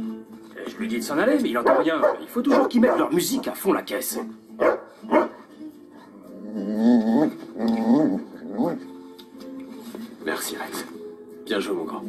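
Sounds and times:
music playing: 0:00.0 - 0:12.0
dog barking: 0:01.6 - 0:03.2, 0:04.6 - 0:05.4.

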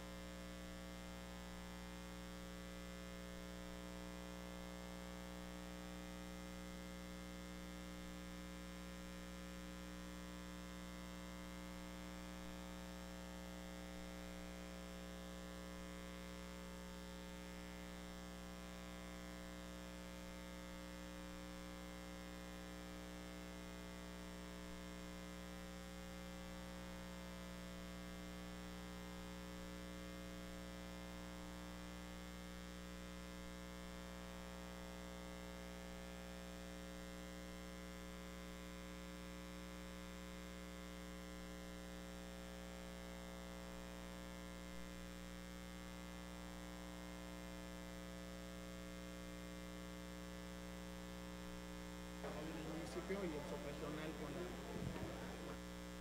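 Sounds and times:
electrical mains hum: 0:00.0 - 0:56.0.

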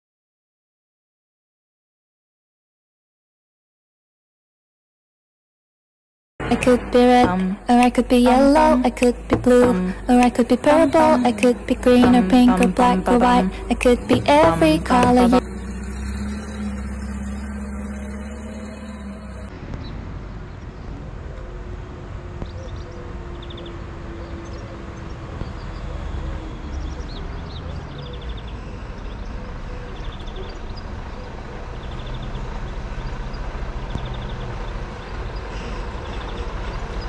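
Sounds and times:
forklift engine humming: 0:06.4 - 0:19.5
truck diesel engine rumble: 0:06.4 - 0:37.0.

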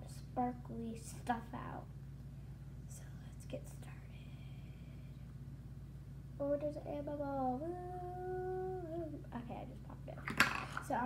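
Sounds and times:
steady low hum: 0:00.0 - 0:11.0
child whispering: 0:02.9 - 0:04.5.

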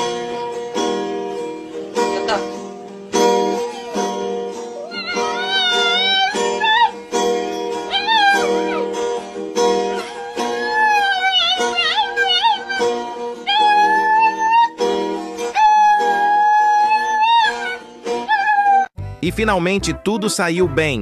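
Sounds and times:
acoustic guitar strumming: 0:00.0 - 0:18.3
dog howling: 0:03.5 - 0:07.0, 0:07.8 - 0:09.0, 0:09.8 - 0:18.9.

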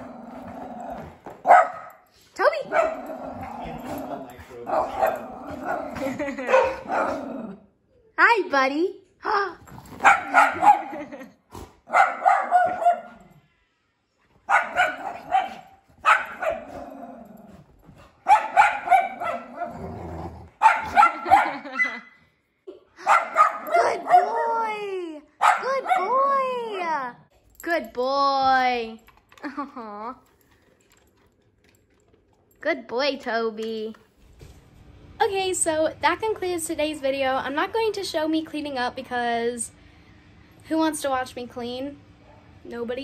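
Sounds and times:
dog barking and growling: 0:00.0 - 0:07.8, 0:09.7 - 0:13.4, 0:14.4 - 0:22.0, 0:23.0 - 0:26.5.

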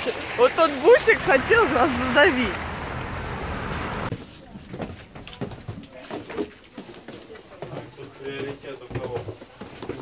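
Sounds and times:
rain hiss on wet street: 0:00.0 - 0:04.1.

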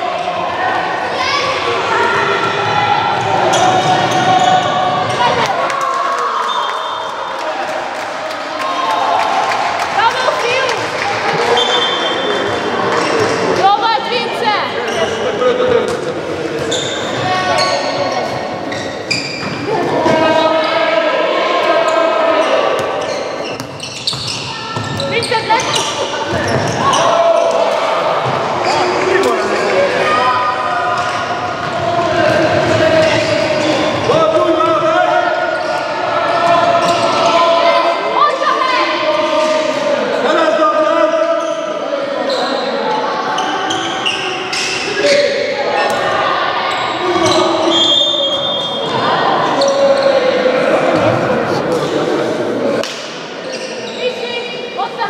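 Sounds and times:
voices of players: 0:00.0 - 0:55.0.

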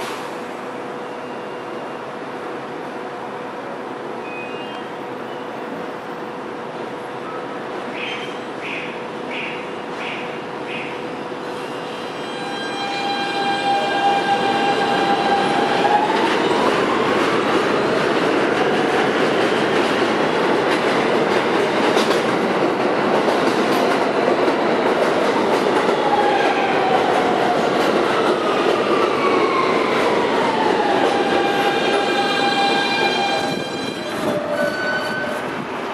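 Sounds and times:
train wheels rumbling on rails: 0:08.6 - 0:35.9.

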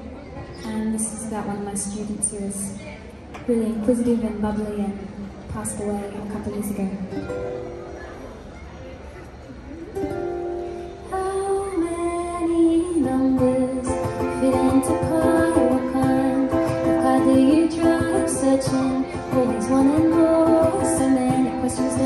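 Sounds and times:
ukulele strumming: 0:07.1 - 0:07.9, 0:10.0 - 0:11.1, 0:11.8 - 0:22.0
woman singing wordless notes: 0:11.0 - 0:22.0.

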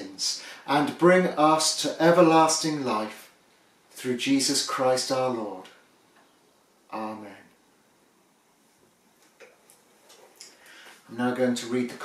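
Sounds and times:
soft intake of breath: 0:00.3 - 0:00.7, 0:10.5 - 0:11.1.

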